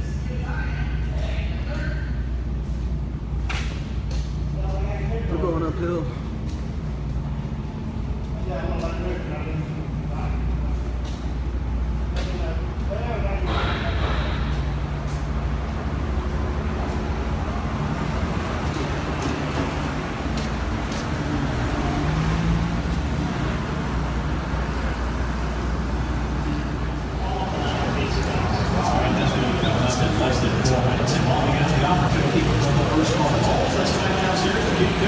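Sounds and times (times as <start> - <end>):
indistinct voices: 8.2 - 35.0.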